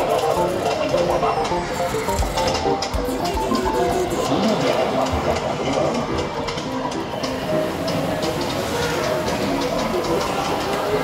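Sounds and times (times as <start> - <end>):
arcade machine sound effects: 0.0 - 11.0
electronic game music: 0.0 - 11.0.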